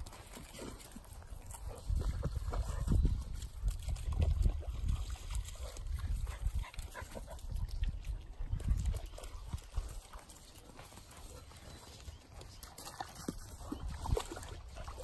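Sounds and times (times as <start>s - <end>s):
dogs scuffling on dry leaves: 0.0s - 15.0s.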